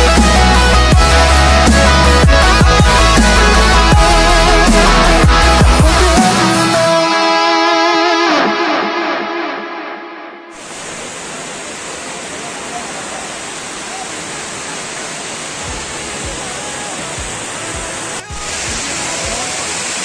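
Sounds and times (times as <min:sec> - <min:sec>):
background music: 0:00.0 - 0:10.5, 0:15.6 - 0:20.0
water rushing down spillway: 0:10.6 - 0:20.0.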